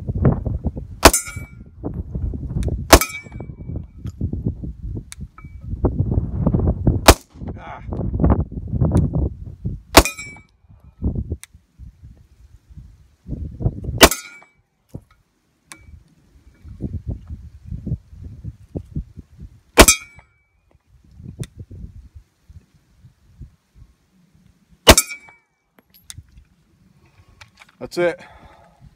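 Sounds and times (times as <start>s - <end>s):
pistol shots with ringing tail: 1.0s - 1.6s, 2.9s - 3.5s, 10.0s - 10.4s, 14.0s - 14.4s, 19.8s - 20.2s, 24.9s - 25.4s.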